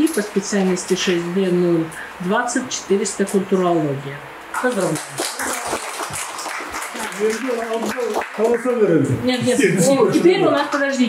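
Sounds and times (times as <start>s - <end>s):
people applauding: 4.5s - 9.0s.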